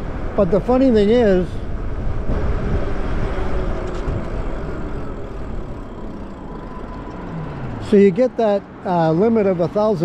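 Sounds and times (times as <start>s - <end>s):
wind buffeting microphone: 0.0s - 7.9s
tyres humming on asphalt: 0.0s - 10.0s.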